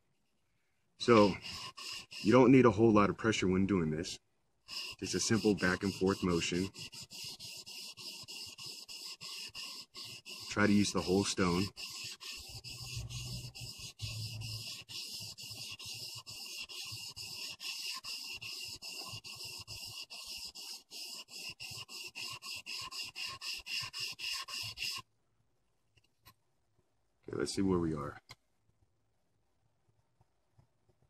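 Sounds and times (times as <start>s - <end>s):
blade scraping on waterstone: 1.0s - 2.7s, 4.7s - 25.0s.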